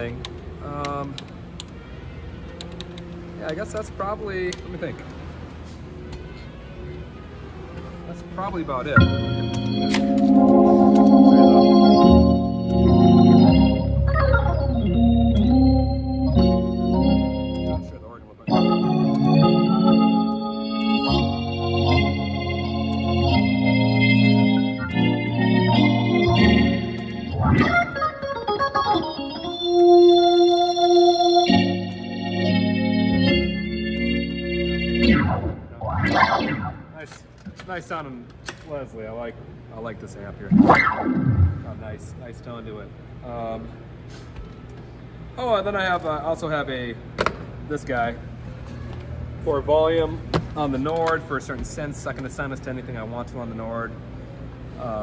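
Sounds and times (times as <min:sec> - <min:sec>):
organ chords through rotating speaker: 0:09.0 - 0:37.0, 0:40.5 - 0:41.8
sustained keyboard tone: 0:09.0 - 0:37.0.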